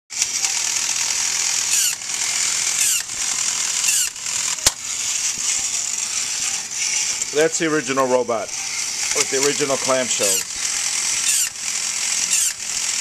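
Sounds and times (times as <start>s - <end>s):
toy robot motor whirring: 0.1s - 13.0s.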